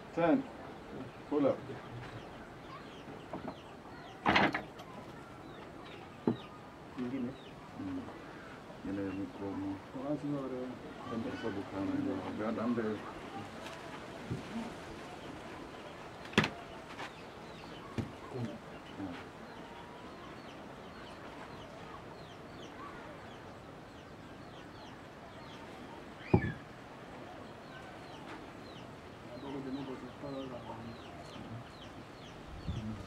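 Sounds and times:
small birds chirping faintly: 0.0 - 33.0.

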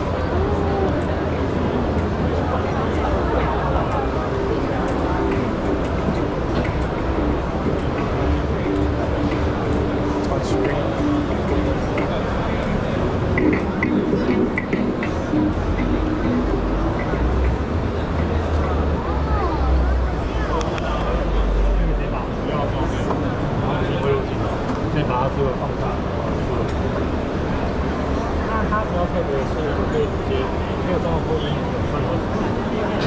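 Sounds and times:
music playing: 0.0 - 25.1
many people talking indistinctly: 0.0 - 33.0.

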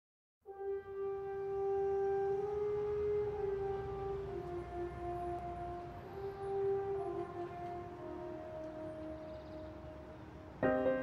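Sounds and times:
long held electronic notes: 0.6 - 11.0.

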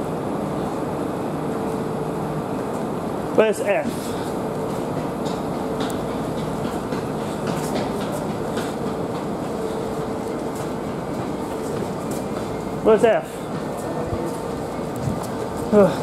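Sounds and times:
railway coaches humming: 0.0 - 16.0.

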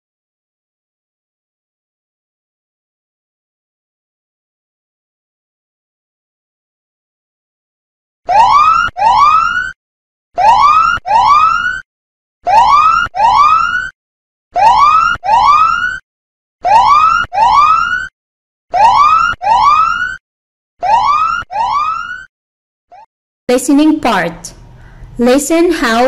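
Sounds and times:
rising whoop alarm: 8.3 - 9.8, 10.4 - 11.8, 12.5 - 13.9, 14.6 - 16.0, 16.6 - 18.1, 18.7 - 20.2, 20.8 - 22.3.

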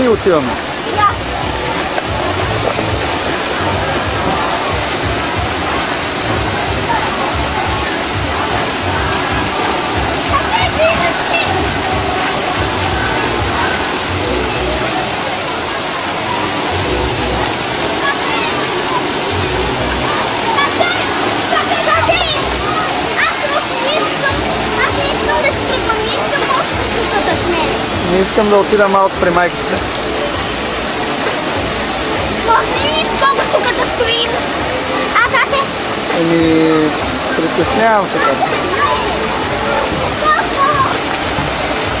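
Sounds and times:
running water rushing: 0.0 - 42.0
voices of people: 0.0 - 42.0.

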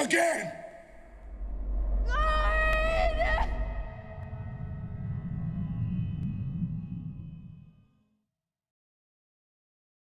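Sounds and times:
deep rumbling drone: 0.9 - 8.2.

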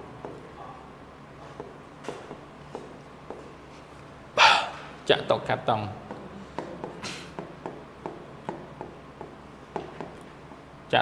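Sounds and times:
person's breathy vocal sound: 4.4 - 4.8.

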